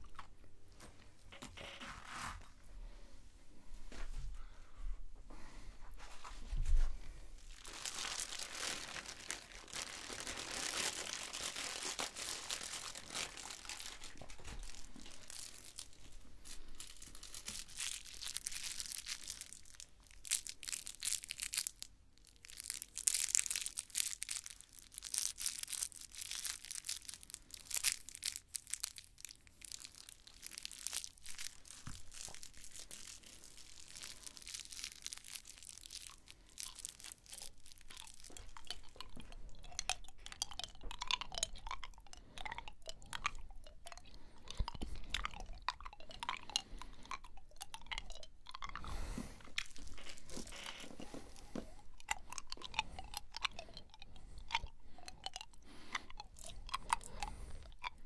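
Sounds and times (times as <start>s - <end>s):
crinkly material crackling: 6.0s - 58.0s.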